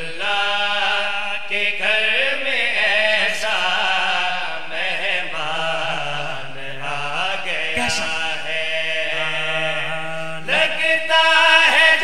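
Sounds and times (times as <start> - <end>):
man chanting: 7.2 - 10.5.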